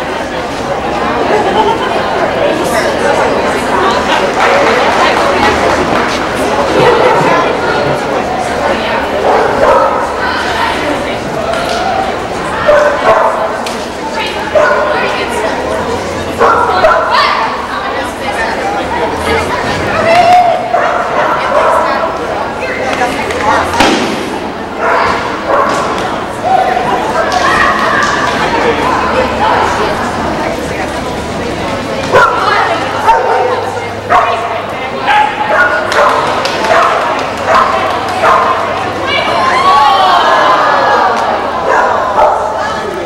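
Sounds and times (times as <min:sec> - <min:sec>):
people's voices: 0:00.0 - 0:43.0
dog barking: 0:09.2 - 0:10.0, 0:12.7 - 0:13.4, 0:14.6 - 0:14.9, 0:16.4 - 0:17.1, 0:33.0 - 0:34.5, 0:35.5 - 0:38.6.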